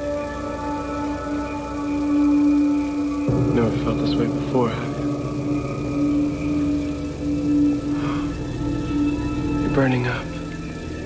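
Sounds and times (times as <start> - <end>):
synthesizer pad: 0.0 - 11.0.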